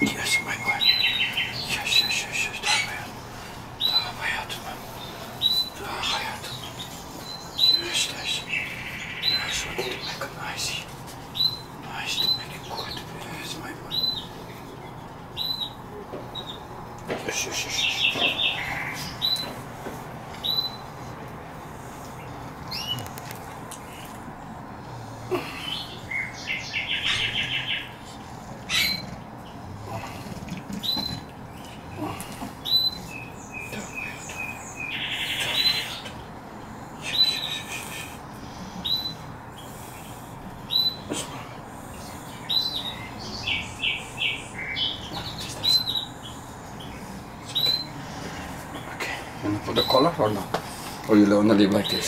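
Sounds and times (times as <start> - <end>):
bird chirping: 0.0 - 19.7, 20.4 - 20.9, 22.2 - 24.6, 25.4 - 48.0.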